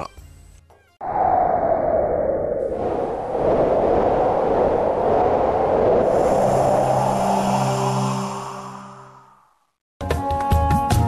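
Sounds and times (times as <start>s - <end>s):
sweeping whoosh: 1.0s - 9.8s.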